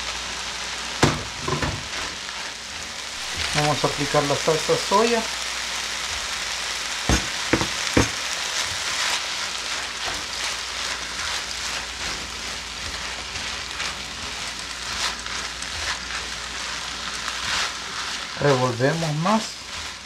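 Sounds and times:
rice sizzling in a pan: 0.0 - 20.0
spatula scraping through rice: 1.8 - 4.7, 8.4 - 20.0.

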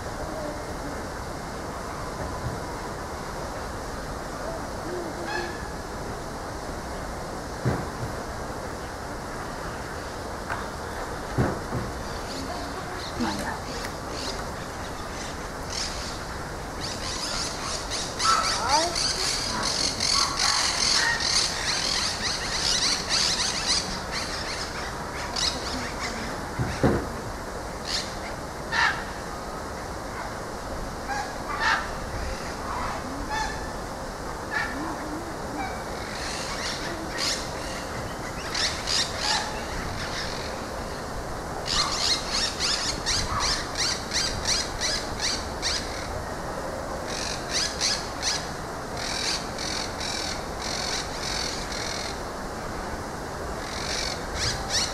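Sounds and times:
small birds chirping: 11.9 - 26.9.

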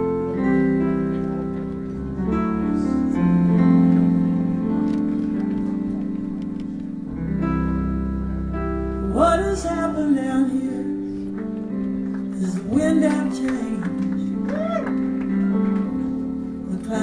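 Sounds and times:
live band playing slow song: 0.0 - 17.0.

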